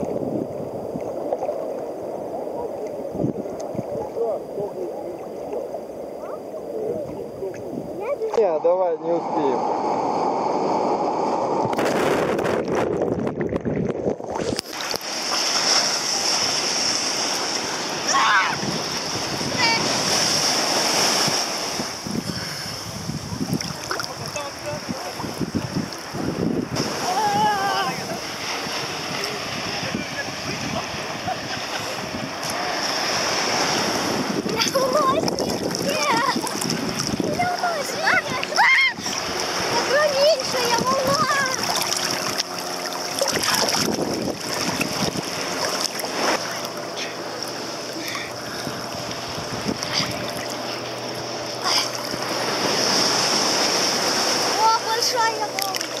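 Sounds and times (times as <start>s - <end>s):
wind on microphone: 0.0s - 5.3s, 6.1s - 47.3s, 48.3s - 56.0s
surf washing: 0.0s - 56.0s
water churning and splashing: 0.0s - 56.0s
wave crashing: 0.0s - 56.0s.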